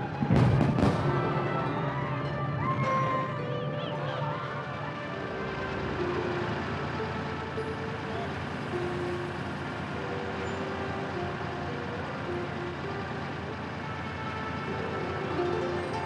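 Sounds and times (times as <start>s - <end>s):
dense road traffic: 0.0s - 16.0s
music: 0.0s - 16.0s.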